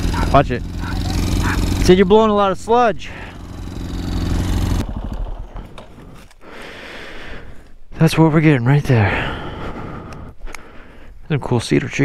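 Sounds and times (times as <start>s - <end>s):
motorcycle engine running: 0.0s - 6.2s.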